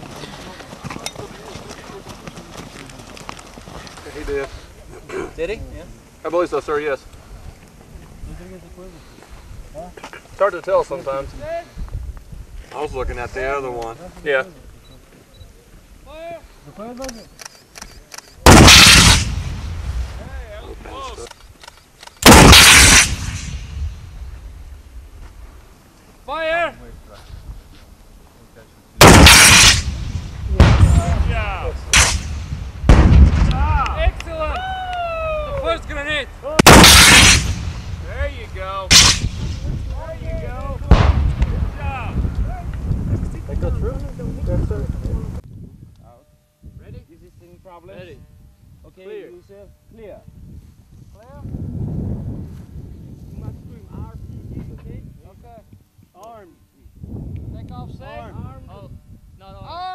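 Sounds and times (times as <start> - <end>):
faint high-pitched beeps: 14.8 - 15.6
sharp clicks: 17.0 - 18.4, 21.2 - 23.0
rocket launcher blast: 18.4 - 20.2, 22.2 - 24.0, 29.0 - 33.7, 36.6 - 38.1, 38.8 - 39.9, 40.9 - 41.8
sharp bangs: 18.4 - 20.3, 22.2 - 24.2, 29.0 - 34.4, 36.5 - 40.2, 40.8 - 41.9.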